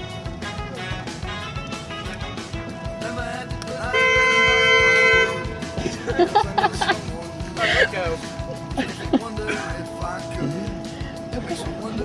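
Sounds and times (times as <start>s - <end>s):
background rock music: 0.0s - 12.0s
two-tone car horn blast: 3.8s - 5.8s
laughter: 5.8s - 9.6s.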